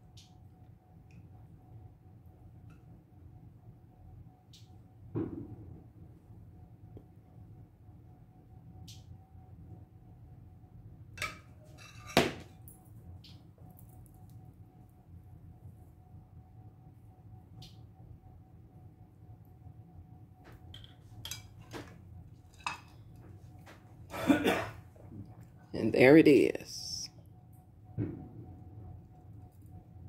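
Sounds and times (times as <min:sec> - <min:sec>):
faint steady hum: 0:00.0 - 0:30.0.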